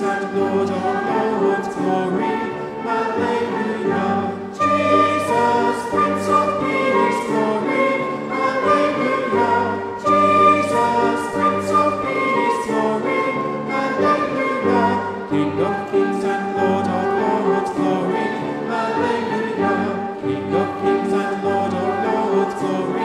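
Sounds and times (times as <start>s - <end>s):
congregation and choir singing: 0.0s - 23.0s
flute: 0.0s - 23.0s.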